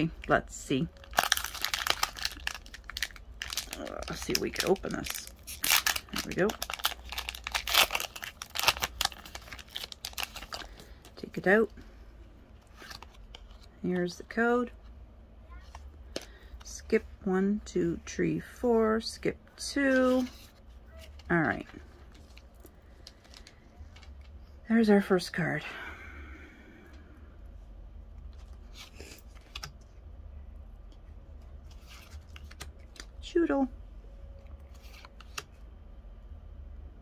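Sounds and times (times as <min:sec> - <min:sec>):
steady low hum: 0:00.0 - 0:37.0
trading cards rustling: 0:00.3 - 0:11.7, 0:12.5 - 0:14.2, 0:19.6 - 0:24.4, 0:31.5 - 0:33.2, 0:34.6 - 0:35.5
cards sliding and rustling: 0:34.7 - 0:35.5.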